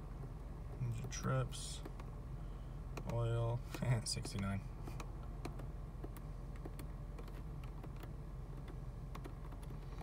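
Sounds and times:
car engine idling: 0:00.0 - 0:10.0
dashboard buttons clicking: 0:00.1 - 0:02.2, 0:02.9 - 0:10.0.

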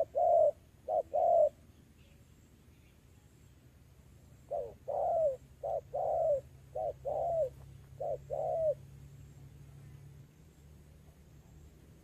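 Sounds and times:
dove cooing: 0:00.0 - 0:01.7, 0:04.4 - 0:09.0.

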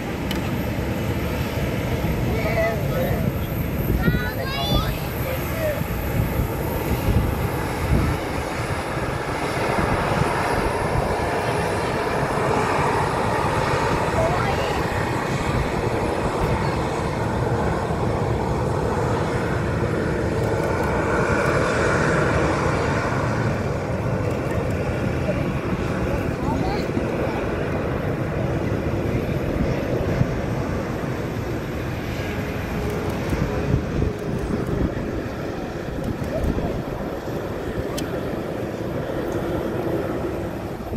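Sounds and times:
jet engines rumbling at taxi thrust: 0:00.0 - 0:40.9.

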